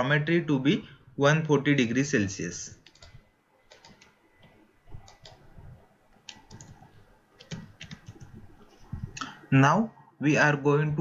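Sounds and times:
keyboard keystrokes: 2.8s - 5.4s, 6.2s - 6.8s, 7.4s - 8.4s.

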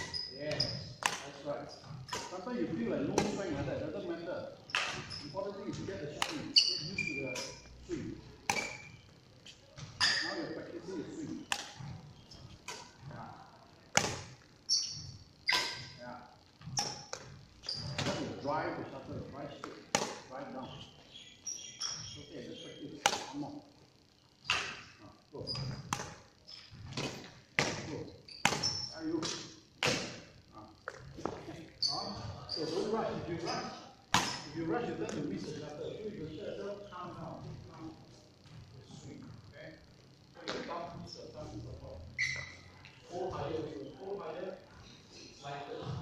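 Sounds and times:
shoes squeaking on court: 0.0s - 2.5s, 4.7s - 7.8s, 8.5s - 13.2s, 14.0s - 16.0s, 16.6s - 18.5s, 20.0s - 23.4s, 24.4s - 30.2s, 30.8s - 34.6s, 42.1s - 43.0s
rackets hitting shuttlecock in echoing hall: 1.0s - 3.6s, 4.7s - 7.8s, 8.4s - 10.6s, 11.2s - 13.1s, 13.9s - 16.0s, 16.7s - 18.3s, 19.6s - 20.4s, 23.0s - 23.5s, 24.4s - 31.4s, 34.1s - 35.3s.

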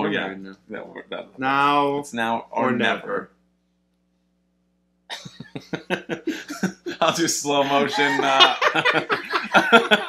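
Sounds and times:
breathy laughter: 5.1s - 10.0s.

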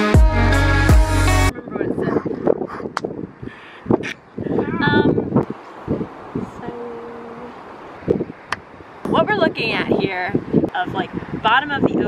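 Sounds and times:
woman's voice: 1.5s - 2.4s, 4.5s - 5.3s, 6.4s - 7.6s, 9.1s - 12.0s
wind buffeting microphone: 1.5s - 12.0s.

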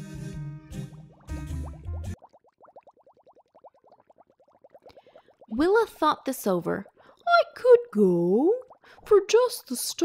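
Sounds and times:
cartoon bubbling blips: 1.1s - 9.2s.

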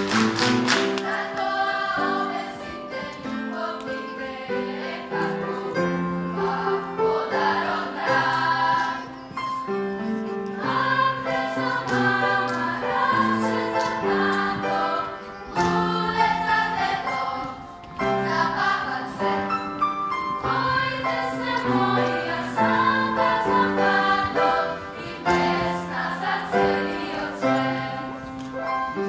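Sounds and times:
children's choir singing: 0.0s - 29.0s.

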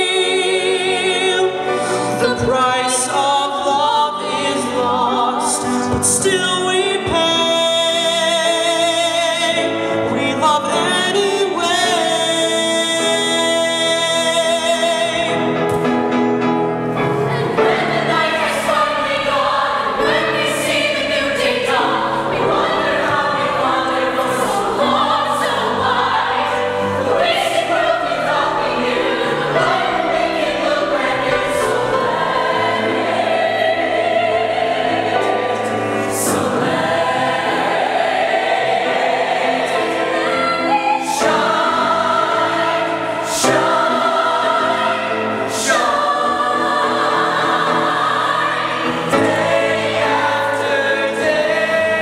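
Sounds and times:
choir singing in harmony: 0.0s - 52.0s.

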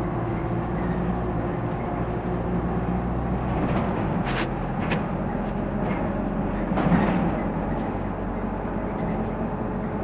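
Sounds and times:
bus diesel engine running: 0.0s - 10.0s
road and body noise: 0.0s - 10.0s.

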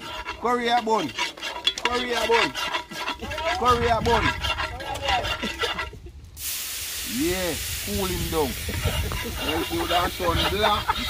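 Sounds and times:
water hissing on hot pot: 6.4s - 11.0s.

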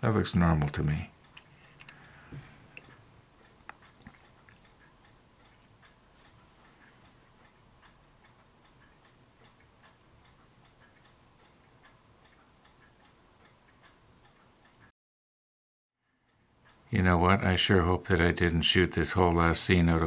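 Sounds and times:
light ticks: 0.6s - 14.9s.

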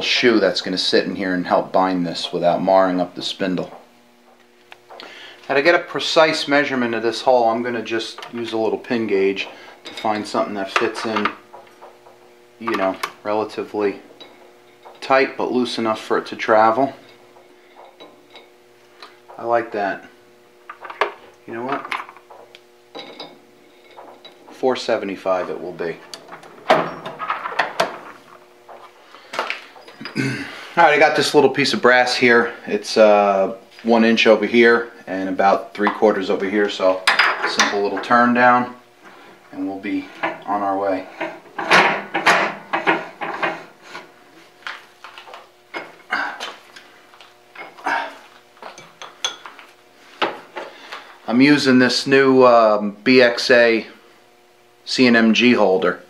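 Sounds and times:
steel gauges tinkling: 2.2s - 20.1s, 20.8s - 27.3s
metal clinks and clanks: 21.7s - 24.5s.

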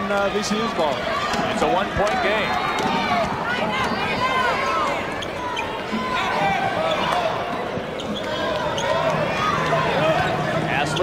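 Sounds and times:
crowd murmur: 0.0s - 11.0s
sneakers squeaking: 0.9s - 11.0s.

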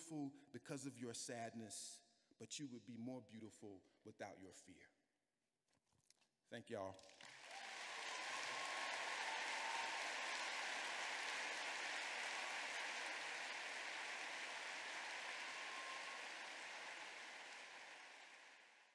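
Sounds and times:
audience applauding: 7.0s - 18.9s.

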